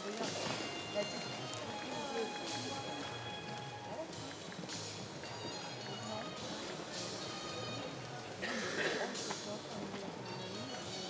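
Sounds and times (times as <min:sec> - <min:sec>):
arena music: 0:00.0 - 0:11.0.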